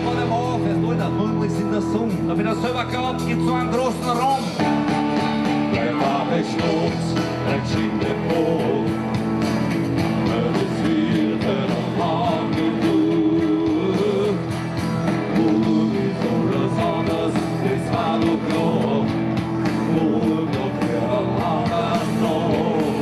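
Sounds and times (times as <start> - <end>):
live rock band: 0.0 - 23.0
person singing: 5.7 - 9.2, 10.2 - 14.5, 15.2 - 23.0.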